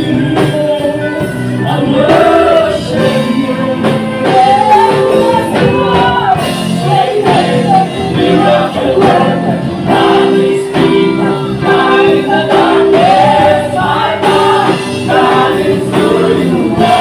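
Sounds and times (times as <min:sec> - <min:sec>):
choir singing gospel chorus: 0:00.0 - 0:17.0
live band playing: 0:00.0 - 0:17.0.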